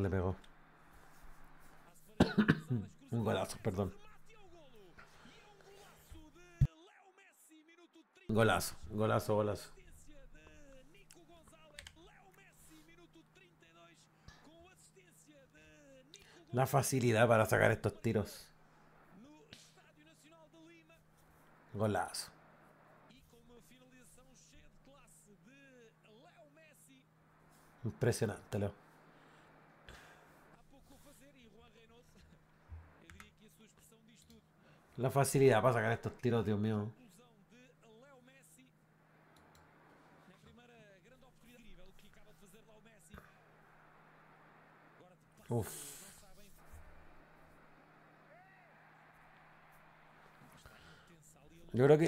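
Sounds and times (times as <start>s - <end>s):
steady low hum: 0.0s - 6.7s, 8.3s - 26.2s, 27.1s - 40.4s, 41.0s - 48.3s
faint football commentary: 0.0s - 22.5s, 23.1s - 29.3s, 29.9s - 38.8s, 40.1s - 52.0s.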